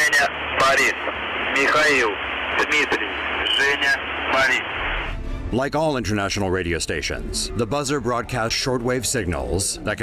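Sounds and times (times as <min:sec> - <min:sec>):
voice over radio static: 0:00.0 - 0:05.0
shortwave radio static: 0:00.0 - 0:05.1.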